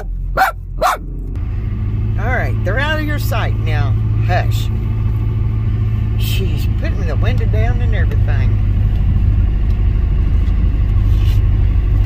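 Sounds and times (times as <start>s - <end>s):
small dog barking: 0.0s - 1.0s
car hum: 0.0s - 12.0s.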